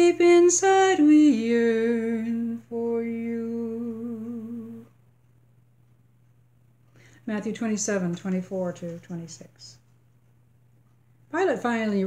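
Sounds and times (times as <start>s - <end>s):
woman singing long low note: 0.0s - 5.0s.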